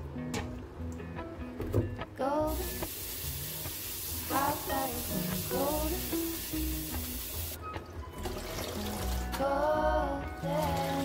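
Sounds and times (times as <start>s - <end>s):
quiet music: 0.0s - 11.0s
tap water running and splashing: 2.5s - 7.6s, 8.2s - 9.4s, 10.6s - 11.0s.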